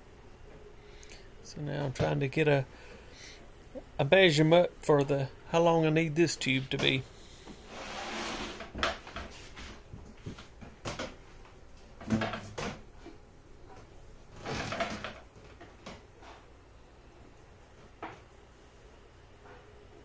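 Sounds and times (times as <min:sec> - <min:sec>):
plastic tube rustling scrapes: 0:07.6 - 0:09.8.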